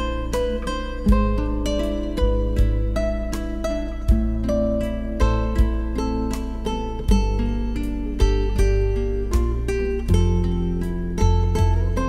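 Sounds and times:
acoustic guitar picking notes: 0.0 - 12.0
deep sustained bass: 0.0 - 12.0.

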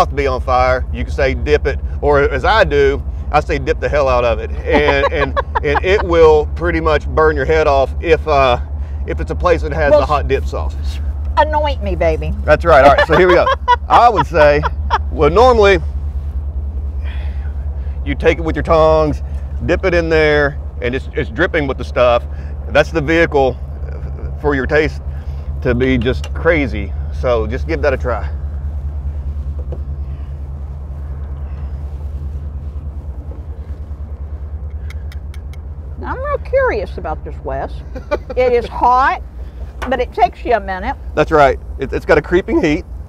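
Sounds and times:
engine rumbling hum: 0.0 - 43.0.

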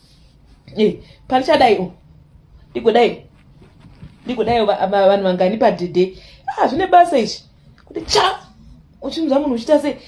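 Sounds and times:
person speaking: 0.6 - 10.0.

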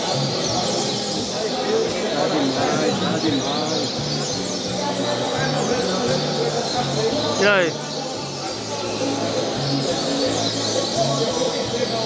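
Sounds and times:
songbirds singing and chirping: 0.0 - 12.0.

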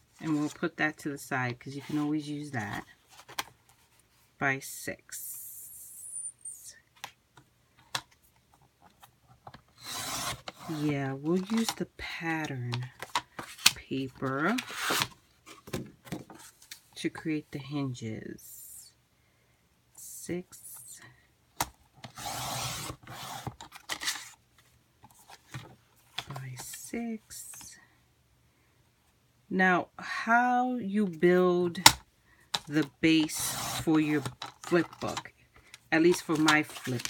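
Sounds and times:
paper trimmer cutting: 9.8 - 10.8, 33.3 - 34.3.

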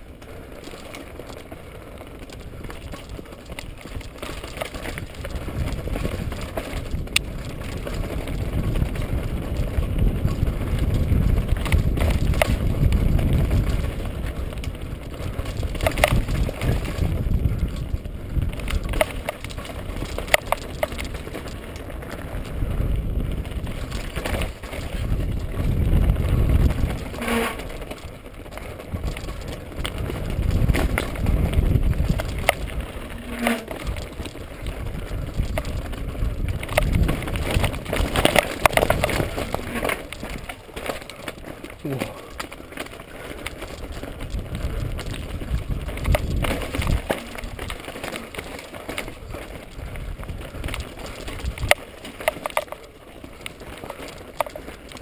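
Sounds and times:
bike knocking on stones: 0.0 - 55.0
bike tyres rumbling on rocks: 0.0 - 55.0
wind: 0.0 - 55.0.

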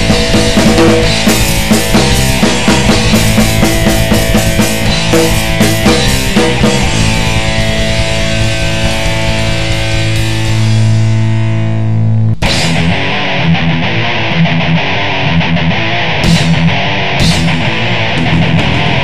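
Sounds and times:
cymbal crashes: 0.0 - 11.4
ringing distorted guitar chord: 0.0 - 19.0
thrash band playing fast riff: 0.0 - 19.0.

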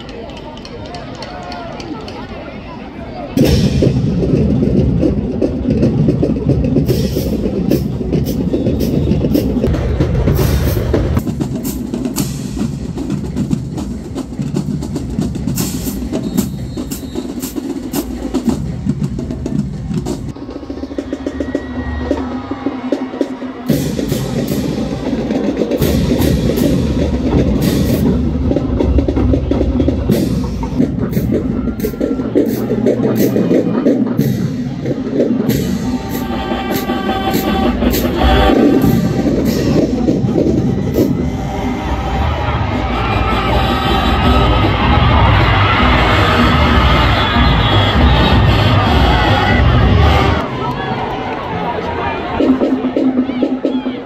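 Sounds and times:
marching band drums and brass: 0.0 - 54.0.

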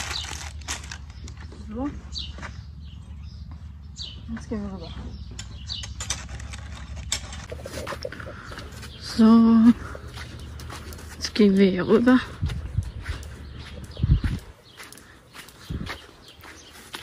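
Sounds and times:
steady low rumble: 0.0 - 16.2.

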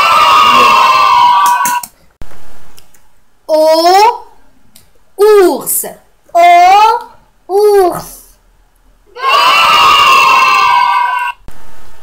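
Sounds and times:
high-pitched animal cry: 0.0 - 1.7, 9.1 - 11.4.

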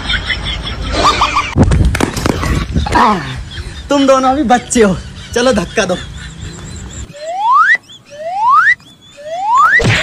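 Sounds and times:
rising cartoon whistle: 7.1 - 10.0.

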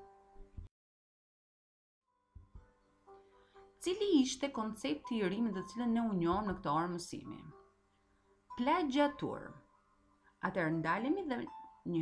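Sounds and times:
woman speaking: 3.8 - 7.5, 8.6 - 9.6, 10.4 - 12.0.

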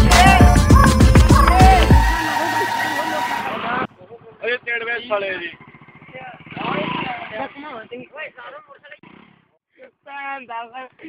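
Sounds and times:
music track: 0.0 - 3.8
men calling out: 0.0 - 9.0
motorcycle engine running: 3.1 - 8.0.

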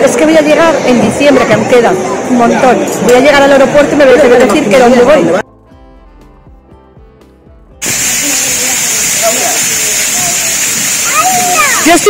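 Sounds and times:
fountain jets hissing and splashing: 7.8 - 12.0.

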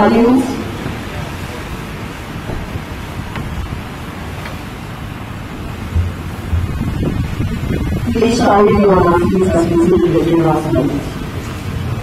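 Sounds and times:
wind buffeting microphone: 0.0 - 12.0
soft thump: 5.9 - 7.2.

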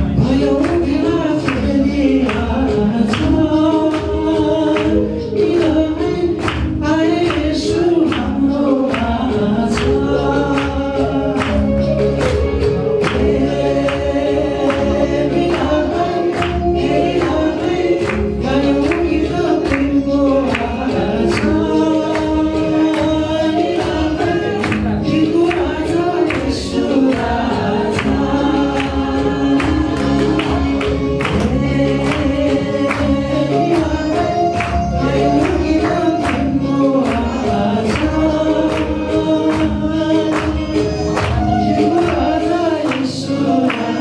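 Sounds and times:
accompaniment with steady beat: 0.0 - 44.0
voices singing: 0.0 - 44.0.

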